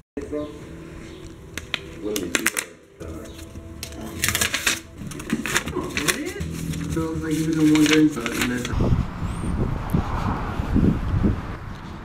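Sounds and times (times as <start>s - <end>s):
paper sticky notes rustling: 1.5s - 8.8s
wind on microphone: 8.7s - 12.0s.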